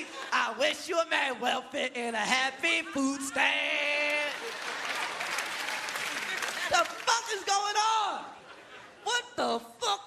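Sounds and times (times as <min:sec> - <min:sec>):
audience applauding: 0:04.0 - 0:07.8.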